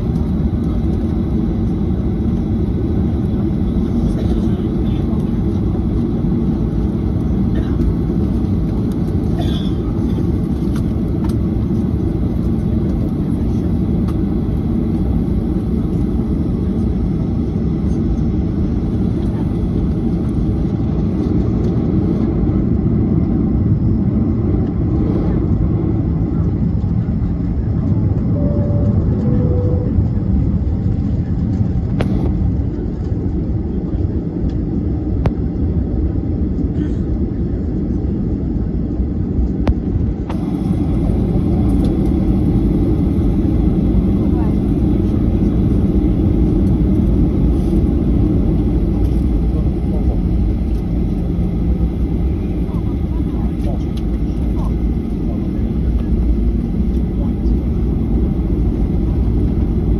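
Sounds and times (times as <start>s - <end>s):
airliner cabin rumble: 0.0s - 59.9s.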